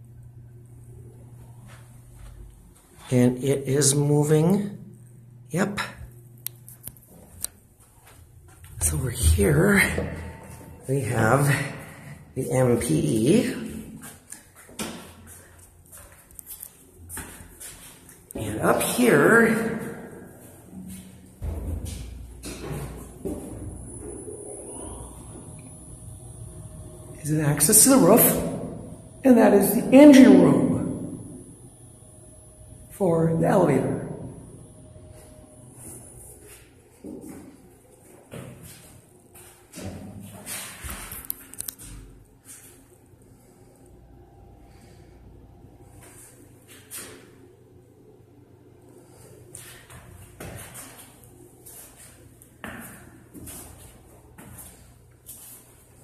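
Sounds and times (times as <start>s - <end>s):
faint low hum: 0.0s - 14.5s, 15.3s - 56.0s
low steady rumble: 19.9s - 36.4s
footsteps on stairs: 20.4s - 24.2s, 49.6s - 55.6s.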